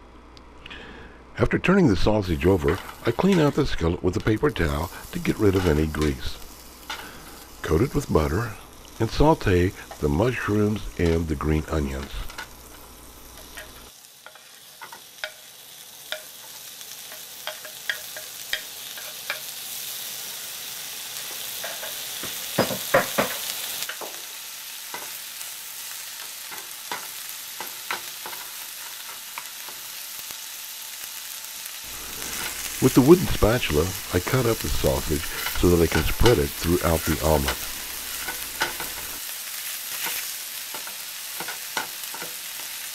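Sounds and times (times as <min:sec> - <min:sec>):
mushrooms sizzling in butter: 0:02.0 - 0:42.9
stirring knocks in pan: 0:21.6 - 0:24.2.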